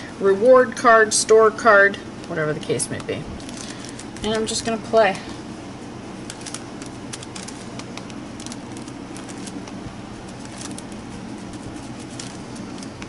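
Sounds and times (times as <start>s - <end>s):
steady low hum: 0.0s - 13.0s
plastic card scraping paper: 6.3s - 13.0s.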